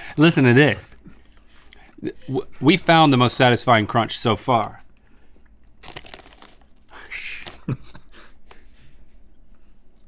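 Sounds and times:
foil bag crinkling: 0:05.7 - 0:07.8
potato chips crackling: 0:05.7 - 0:07.8.

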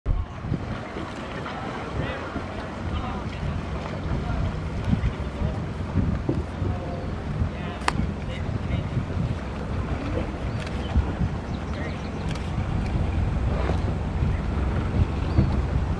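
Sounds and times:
boat motor humming: 0:00.1 - 0:15.9
water rushing past hull: 0:00.1 - 0:15.9
wind buffeting microphone: 0:00.1 - 0:15.9.

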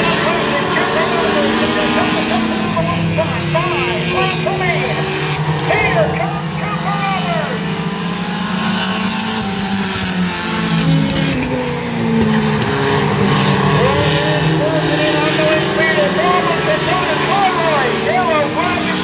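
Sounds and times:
person speaking: 0:00.0 - 0:07.6, 0:13.7 - 0:19.0
race car engines droning: 0:00.0 - 0:19.0.

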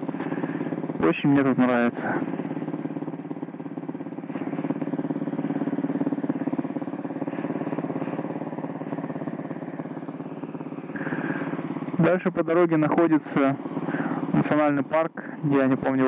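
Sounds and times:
motorcycle engine idling: 0:00.0 - 0:16.0.

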